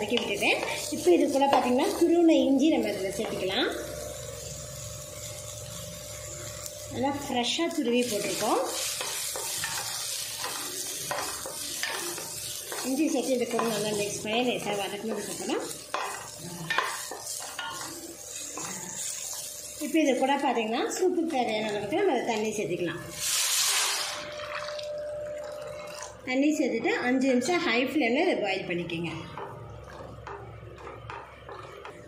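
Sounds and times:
vegetables sizzling: 0.0 - 26.4, 27.1 - 32.0.

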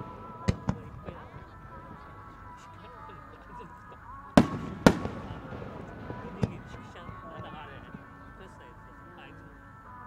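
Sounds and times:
firework bangs: 0.0 - 3.3, 4.4 - 8.6
faint musical tones: 0.0 - 10.0.

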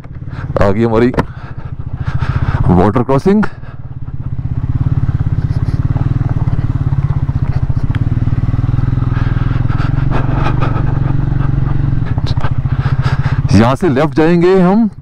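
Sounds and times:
motorcycle engine running: 0.0 - 15.0.

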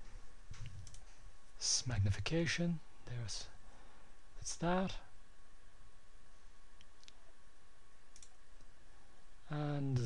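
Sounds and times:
background hiss: 0.0 - 10.0
computer mouse clicks: 0.6 - 1.2, 8.1 - 8.7.

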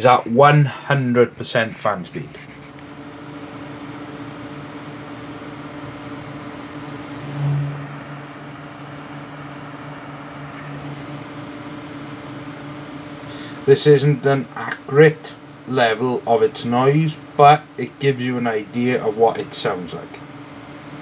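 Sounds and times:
computer fans running: 0.0 - 21.0
cooler fan whirring with low hum: 0.0 - 21.0.

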